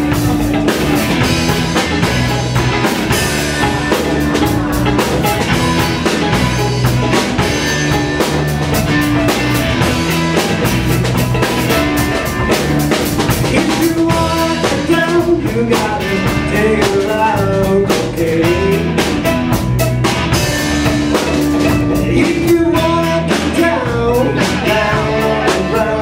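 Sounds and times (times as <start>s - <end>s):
bending guitar lead line: 0.0s - 26.0s
blues band playing: 0.0s - 26.0s.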